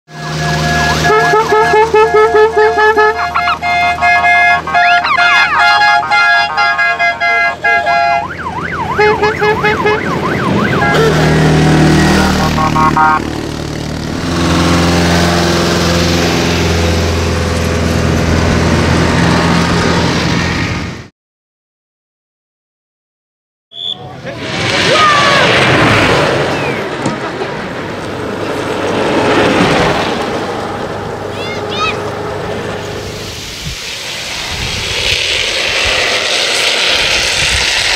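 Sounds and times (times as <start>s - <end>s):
electronic siren: 0.1s - 13.4s
low engine hum: 0.1s - 21.1s, 24.4s - 37.9s.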